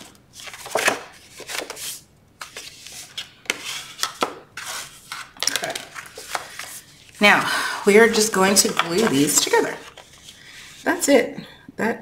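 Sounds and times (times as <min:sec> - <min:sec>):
cardstock rustling and scraping: 0:00.0 - 0:11.0.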